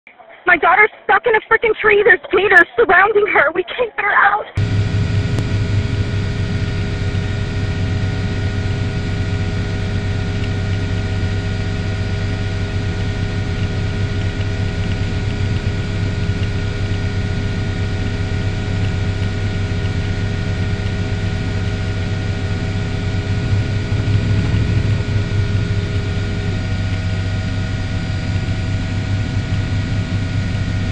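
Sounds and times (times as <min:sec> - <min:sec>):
helicopter engine and rotor: 0:04.6 - 0:30.9.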